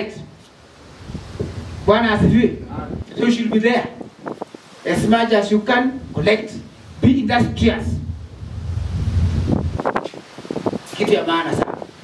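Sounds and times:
man's voice through microphone: 0.0s - 0.4s, 1.8s - 4.2s, 4.8s - 8.3s, 10.9s - 11.9s
wind buffeting microphone: 0.9s - 12.0s.

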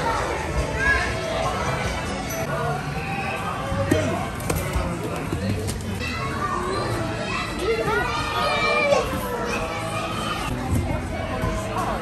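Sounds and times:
children shouting and squealing: 6.0s - 10.5s.

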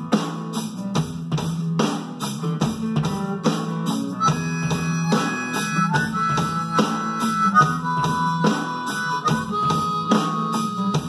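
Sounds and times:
drum and cymbal hits: 0.0s - 11.0s
rock band: 0.0s - 11.0s
harmonica solo: 4.0s - 11.0s.

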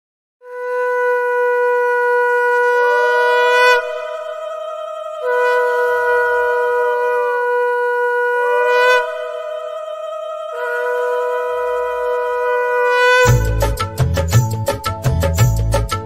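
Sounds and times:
conch shell blasts: 0.4s - 4.2s, 5.2s - 9.7s, 10.5s - 14.0s.

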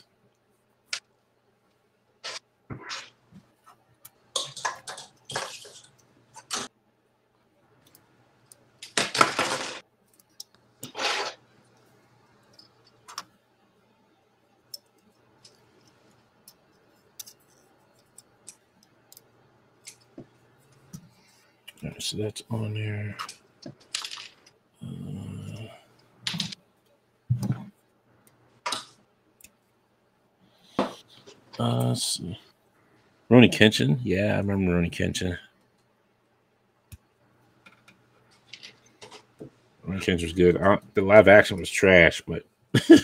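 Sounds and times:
plastic parts clicking and rattling: 4.0s - 6.7s, 23.2s - 24.6s, 37.6s - 39.5s.

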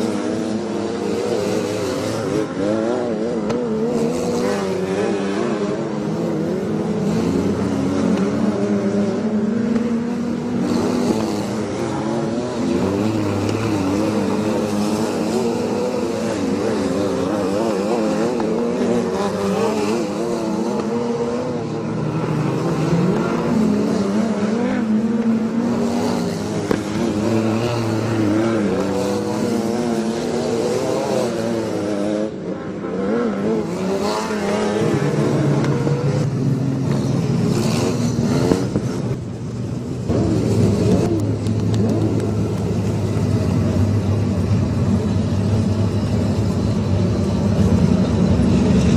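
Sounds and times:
race car engines: 0.0s - 48.9s.

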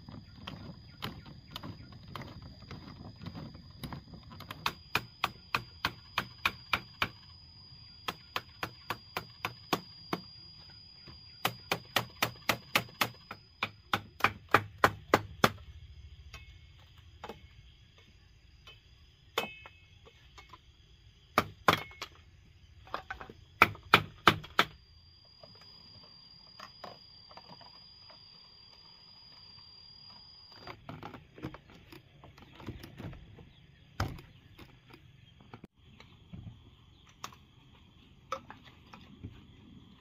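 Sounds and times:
hammer tapping bamboo dowels: 4.4s - 7.2s, 8.0s - 10.3s, 11.4s - 15.6s, 19.4s - 19.8s.

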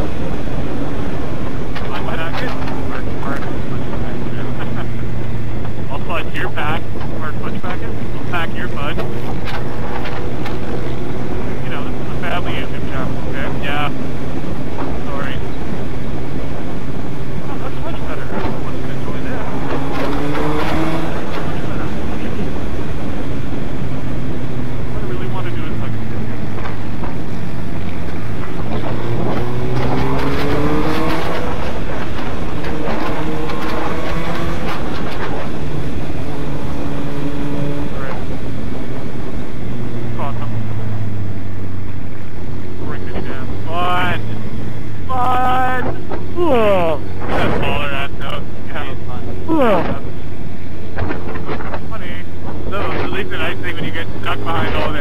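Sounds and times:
motorcycle engine revving on the road: 0.0s - 55.0s.

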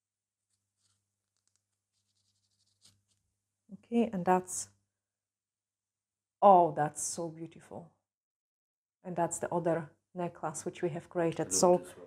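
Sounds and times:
scratch on pendant: 0.4s - 3.4s
rubbing on glass crystals: 0.5s - 3.2s.

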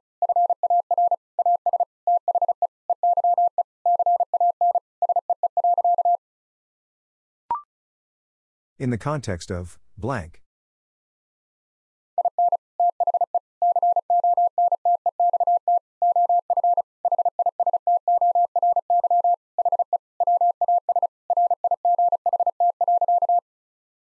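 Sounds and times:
morse code beep tone: 0.2s - 6.2s, 12.2s - 23.4s.

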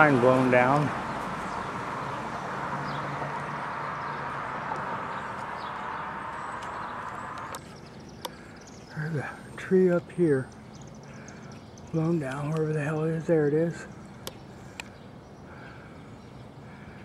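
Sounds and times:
road traffic rush: 0.0s - 17.0s.

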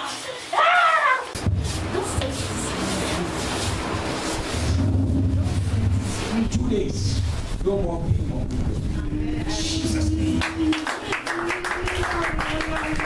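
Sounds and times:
heavy low hum: 1.4s - 12.8s
voices: 7.8s - 13.0s.

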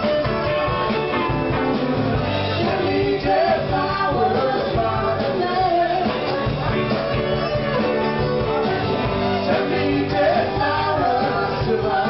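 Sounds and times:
live country-rock band playing: 0.0s - 12.0s.

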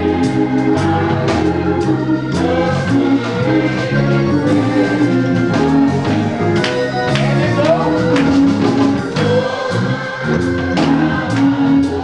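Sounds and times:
choir singing with accompaniment: 0.0s - 12.0s.

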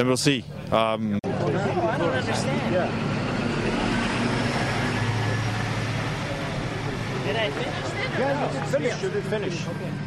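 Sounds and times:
road noise: 0.0s - 10.0s
vehicle engine humming: 0.0s - 10.0s.

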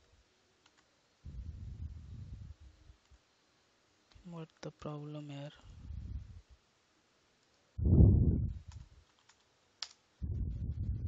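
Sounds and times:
low muffled rumbling: 1.2s - 2.9s, 5.7s - 6.5s, 7.8s - 8.7s, 10.2s - 11.0s
computer keyboard clicks: 8.6s - 10.0s.

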